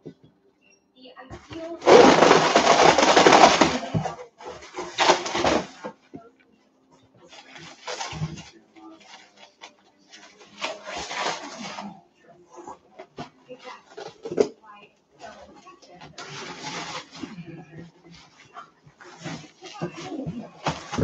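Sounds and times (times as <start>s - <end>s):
packaging rustling and crinkling: 1.5s - 6.1s, 7.3s - 12.0s, 15.2s - 21.0s.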